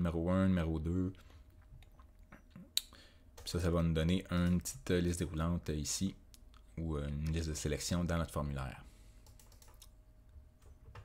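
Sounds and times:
faint steady hum: 0.0s - 11.0s
computer clicks: 9.2s - 10.0s.

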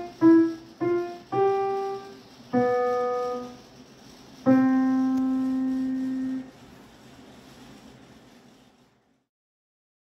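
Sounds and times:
piano note ringing: 4.5s - 6.5s.

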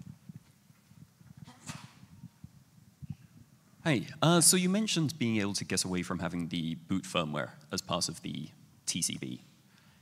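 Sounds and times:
faint footsteps: 0.0s - 3.2s.

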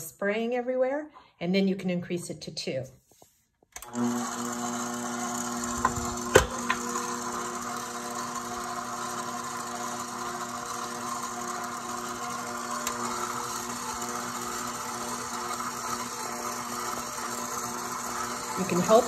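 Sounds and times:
stand mixer motor running: 3.8s - 19.0s.

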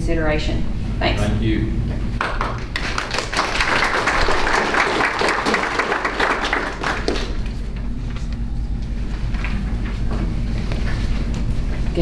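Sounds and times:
people applauding: 2.2s - 7.6s.

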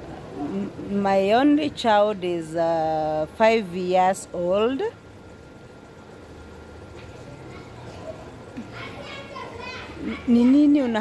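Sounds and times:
low steady hum: 0.0s - 11.0s
children's voices calling: 7.2s - 11.0s.

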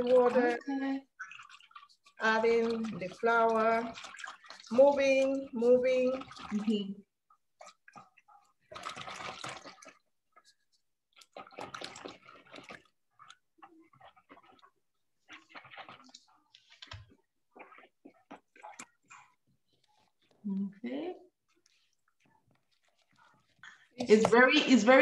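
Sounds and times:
hand mixing dough in water: 0.0s - 25.0s.

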